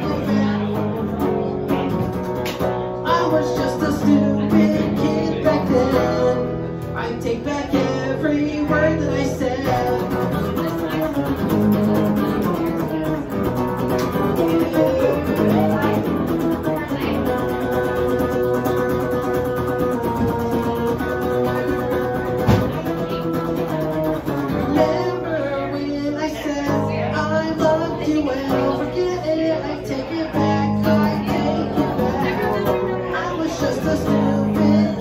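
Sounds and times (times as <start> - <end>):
electric guitar playing punk: 0.0 - 35.0.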